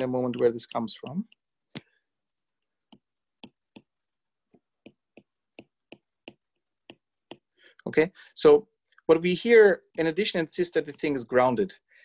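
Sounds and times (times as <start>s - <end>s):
stylus tapping on glass screen: 2.8s - 7.5s.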